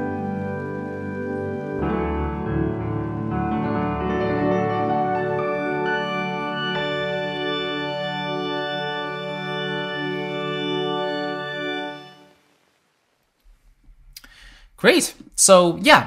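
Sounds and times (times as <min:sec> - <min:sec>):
sustained sampled piano chord: 0:00.0 - 0:12.6.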